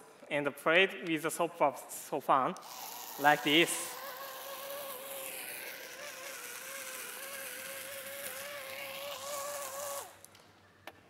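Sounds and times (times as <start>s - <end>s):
small motor and fan buzzing: 2.6s - 10.5s.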